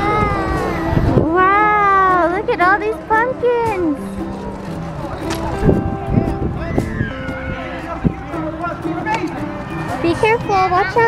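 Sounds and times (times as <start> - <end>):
toddler squealing: 6.7 - 7.9.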